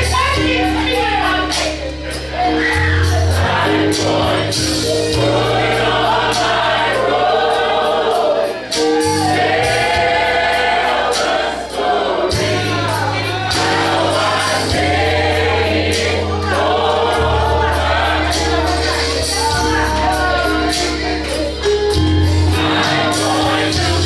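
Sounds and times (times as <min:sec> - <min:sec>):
choir singing gospel song: 0:00.0 - 0:24.0
drum kit beat: 0:00.0 - 0:24.0
low bass line: 0:08.8 - 0:24.0.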